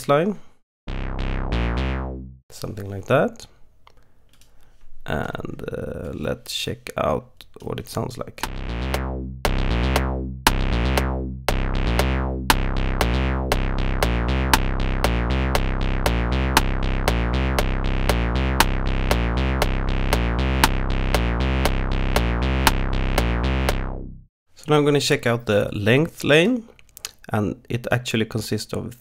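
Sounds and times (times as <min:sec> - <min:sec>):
acid synthesizer bass line: 0:00.9 - 0:02.4, 0:08.4 - 0:24.3
click track ticking: 0:08.4 - 0:24.0.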